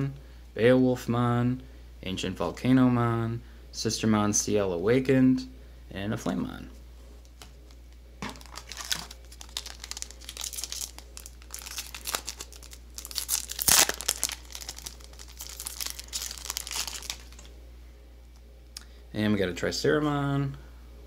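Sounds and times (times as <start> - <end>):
shiny wrapper crinkling: 8.2 - 17.5
wrapper tearing open: 8.2 - 17.5.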